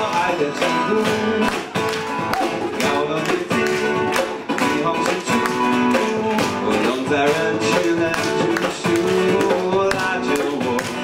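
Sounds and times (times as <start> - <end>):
strummed acoustic guitar chords: 0.0 - 11.0.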